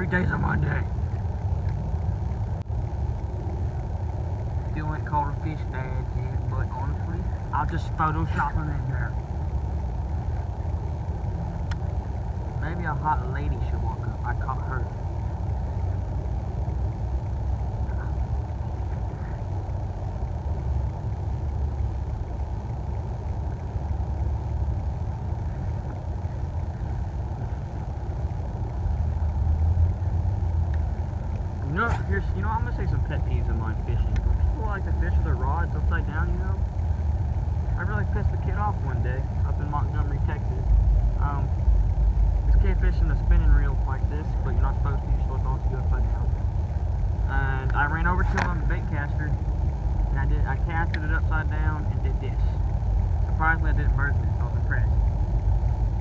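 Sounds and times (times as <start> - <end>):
person speaking: 0.0 - 1.1, 4.7 - 9.2, 31.6 - 36.7, 50.1 - 52.6
low rumbling noise: 0.0 - 56.0.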